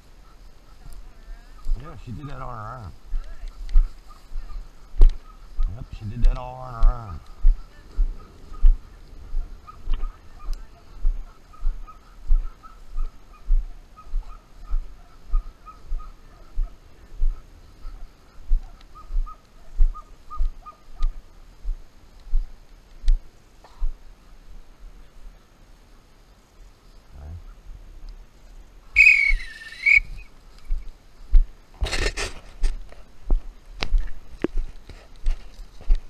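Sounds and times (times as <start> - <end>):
footsteps through tall grass: 0.0 - 24.6, 28.3 - 36.0
faint high chirping: 28.9 - 30.9
dog-training whistle blast: 29.0 - 30.2.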